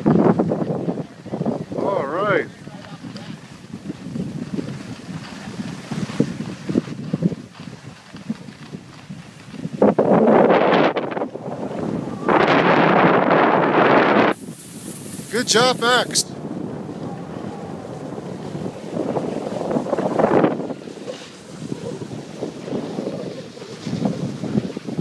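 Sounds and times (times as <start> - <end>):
wind rushing over microphone: 0.0 - 25.0.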